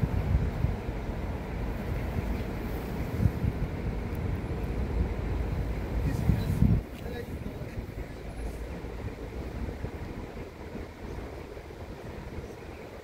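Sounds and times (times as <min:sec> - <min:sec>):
distant diesel train: 0:00.0 - 0:13.0
wind buffeting microphone: 0:00.0 - 0:13.0.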